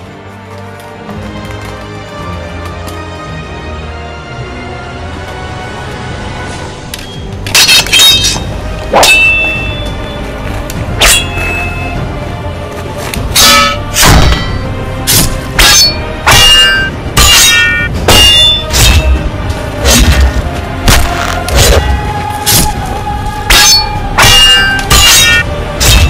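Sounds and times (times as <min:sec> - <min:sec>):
background music: 0:00.0 - 0:26.0
sword blades clanging: 0:07.5 - 0:10.1, 0:10.9 - 0:12.0, 0:13.3 - 0:22.8, 0:23.5 - 0:26.0.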